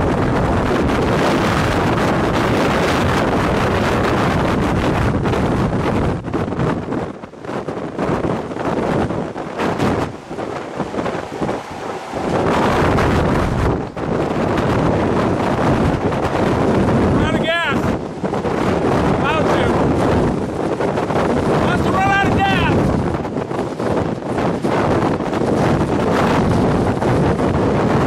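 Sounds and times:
strong wind buffeting microphone: 0:00.0 - 0:28.0.

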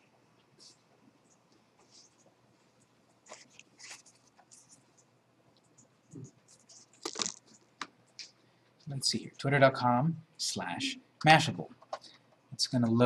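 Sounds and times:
faint ticks and rustles: 0:00.0 - 0:09.0.

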